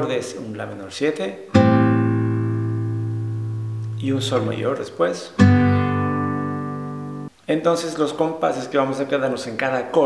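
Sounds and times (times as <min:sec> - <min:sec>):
nylon-string guitar chord strummed: 0:01.5 - 0:04.6, 0:05.4 - 0:07.3.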